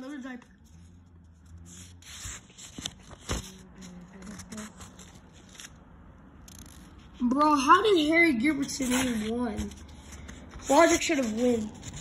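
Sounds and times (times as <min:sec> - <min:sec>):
book pages rustling and turning: 0:00.1 - 0:07.5, 0:08.4 - 0:12.0.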